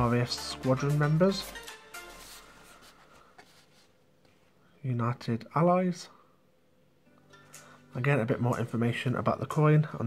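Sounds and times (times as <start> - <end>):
man speaking: 0.0 - 1.6, 4.8 - 6.2, 7.9 - 10.0
cardboard booklet handling: 2.1 - 4.4.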